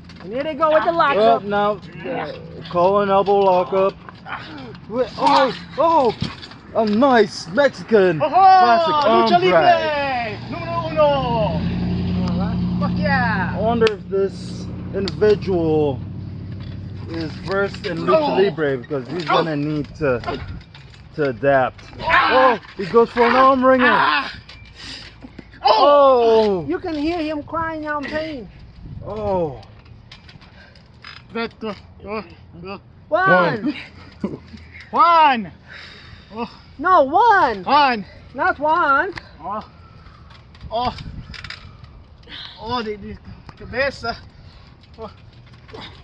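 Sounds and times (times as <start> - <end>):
vehicle engine hum: 0.0 - 46.0
person exclaiming: 8.2 - 11.6.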